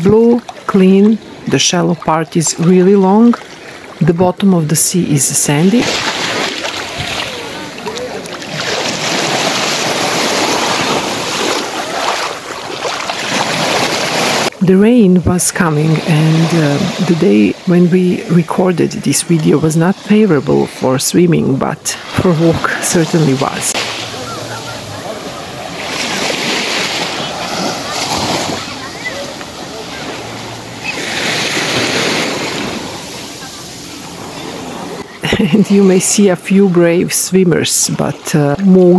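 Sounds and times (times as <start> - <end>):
small waves washing onto shore: 0.0 - 4.4, 5.4 - 38.9.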